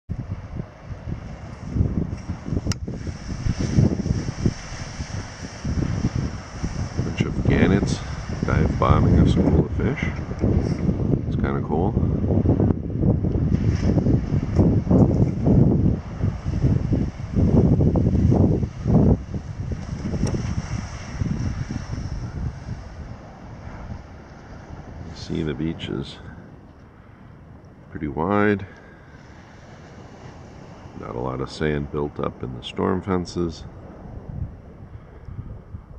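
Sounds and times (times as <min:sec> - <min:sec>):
light surf hiss: 0:00.1 - 0:11.7, 0:13.2 - 0:35.9
wind buffeting microphone: 0:00.1 - 0:35.9.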